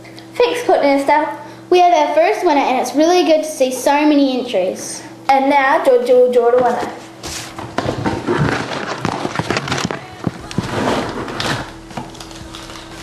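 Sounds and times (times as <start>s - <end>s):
paper slips rustling: 8.4s - 13.0s.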